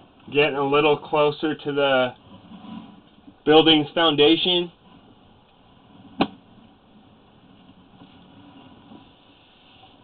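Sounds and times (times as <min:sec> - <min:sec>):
faint steady hum and hiss: 0:00.0 - 0:10.0.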